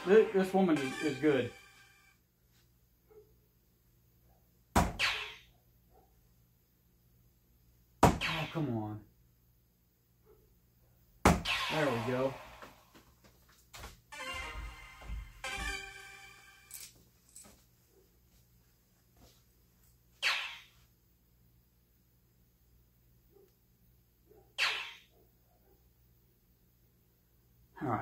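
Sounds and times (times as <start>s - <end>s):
electronic jingle: 0.0s - 2.1s, 14.1s - 16.7s
sharp electronic hit sounds: 11.3s - 12.7s.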